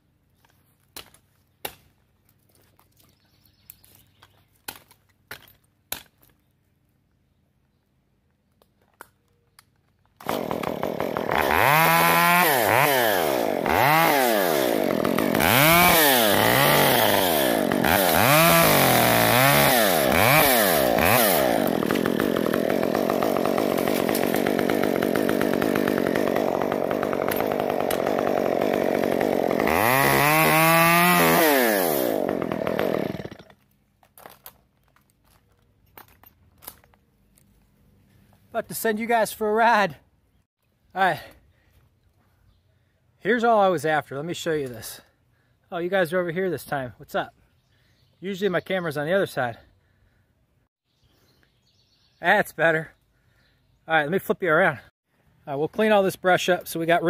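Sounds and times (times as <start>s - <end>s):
chainsaw revving and cutting: 10.2s - 33.6s.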